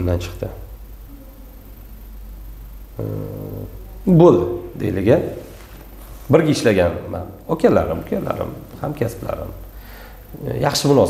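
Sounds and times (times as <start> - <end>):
man humming: 3.0 - 4.0.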